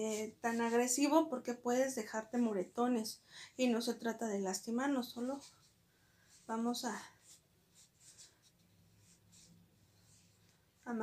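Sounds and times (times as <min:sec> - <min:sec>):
soft scratching and rustling: 0:04.8 - 0:11.0.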